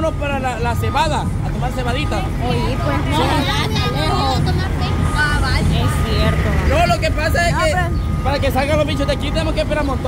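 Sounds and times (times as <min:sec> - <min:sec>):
truck engine rumble: 0:00.0 - 0:10.0
voices talking: 0:00.0 - 0:10.0.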